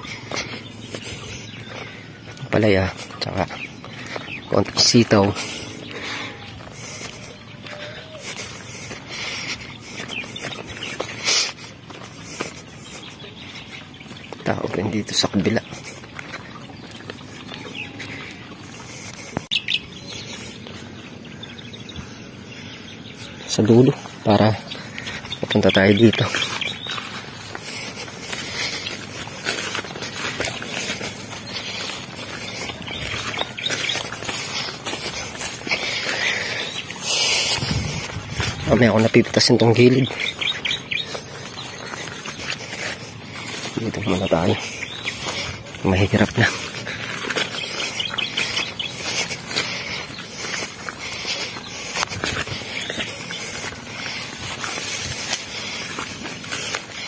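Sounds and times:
birds chirping: 0:00.0 - 0:57.0
leaves rustling: 0:00.0 - 0:57.0.

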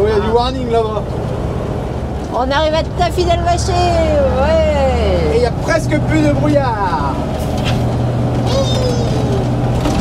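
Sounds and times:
diesel truck engine running: 0:00.0 - 0:10.0
road noise: 0:00.0 - 0:10.0.

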